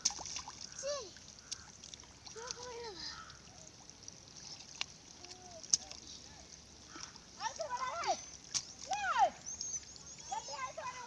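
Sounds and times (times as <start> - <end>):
water trickling: 0.0 - 11.0.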